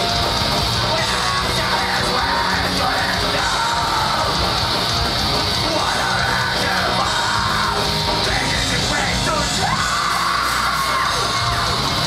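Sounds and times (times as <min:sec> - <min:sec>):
heavy metal band playing: 0:00.0 - 0:12.0
harsh yelled vocal: 0:00.6 - 0:12.0.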